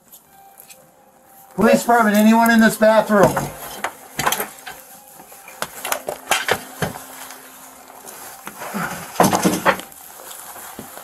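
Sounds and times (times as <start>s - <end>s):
objects clicking and clattering: 8.9s - 9.9s.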